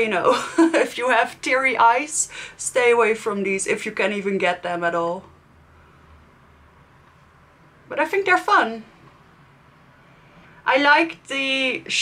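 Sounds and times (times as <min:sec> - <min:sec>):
woman's voice: 0:00.0 - 0:05.3, 0:07.9 - 0:08.9, 0:10.6 - 0:12.0.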